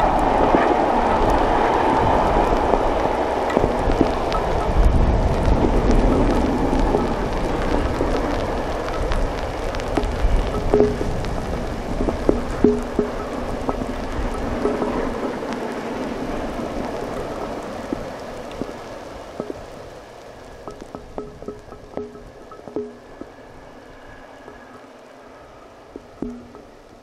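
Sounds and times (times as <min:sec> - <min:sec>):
distant steam locomotive rumble: 0:00.0 - 0:27.0
rain pattering: 0:00.0 - 0:27.0.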